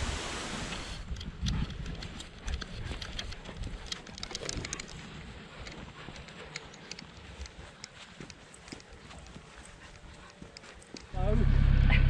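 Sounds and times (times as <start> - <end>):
dog claws clicking: 1.1 - 11.1
footsteps on grass: 4.7 - 11.0.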